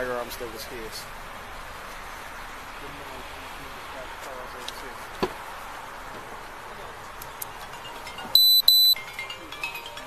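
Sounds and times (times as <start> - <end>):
high-pitched electronic beeps: 8.3 - 9.2.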